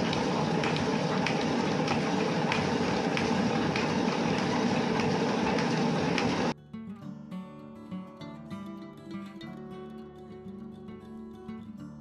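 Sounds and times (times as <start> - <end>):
hand-cranked machine whirring: 0.0 - 6.5.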